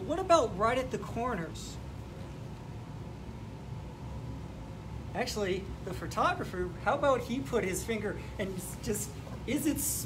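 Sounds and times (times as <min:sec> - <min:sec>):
low room tone hum: 0:00.0 - 0:10.0.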